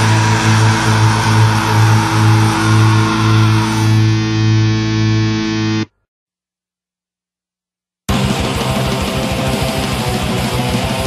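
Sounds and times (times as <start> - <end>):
distorted electric guitar chord ringing: 0.0 - 5.9.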